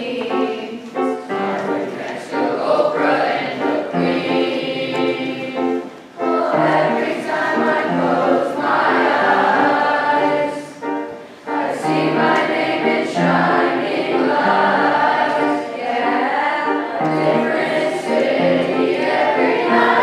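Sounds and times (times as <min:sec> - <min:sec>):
children's choir singing: 0:00.0 - 0:20.0.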